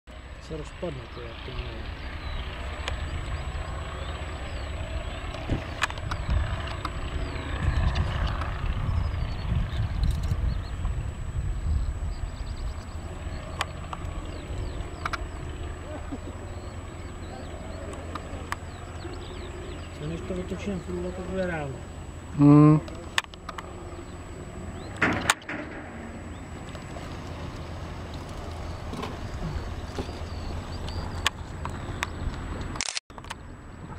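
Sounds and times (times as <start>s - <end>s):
distant biplane engine drone: 0.1s - 33.9s.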